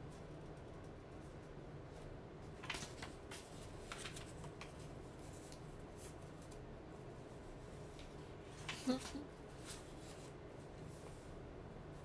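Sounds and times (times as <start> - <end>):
paper rustling and crinkling: 2.5 - 6.6, 7.9 - 11.2.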